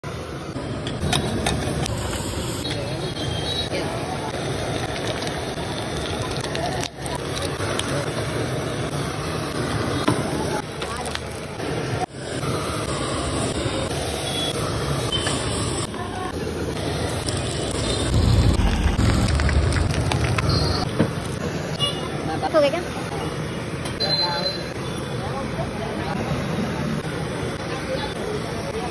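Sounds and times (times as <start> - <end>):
street traffic noise: 0.0 - 28.9
low rumble: 18.0 - 20.8.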